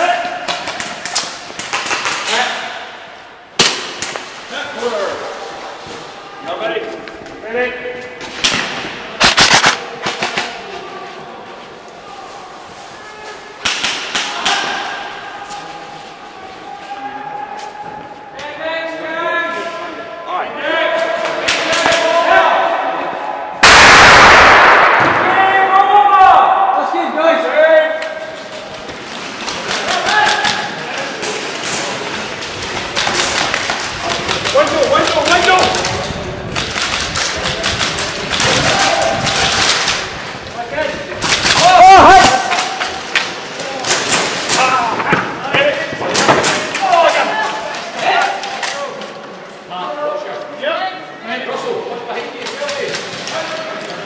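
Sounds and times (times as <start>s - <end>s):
indistinct voices in echoing hall: 0.0s - 54.0s
loud sudden noise bursts: 23.6s - 25.7s.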